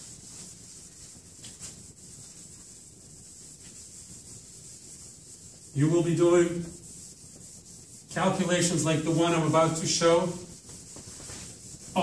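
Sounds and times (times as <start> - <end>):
eraser rubbing blackboard: 0.0 - 12.0.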